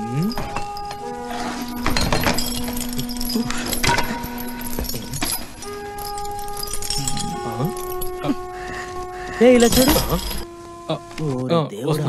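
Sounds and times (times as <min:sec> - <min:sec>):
sharp metallic clinks and rattles: 0:00.0 - 0:10.5.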